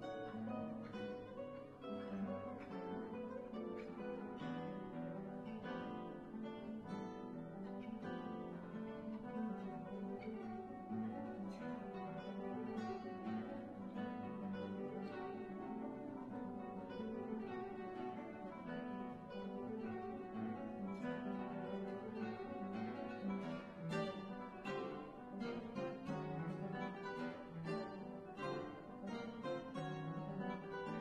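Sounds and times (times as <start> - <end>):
classical guitar duet: 0.0 - 31.0.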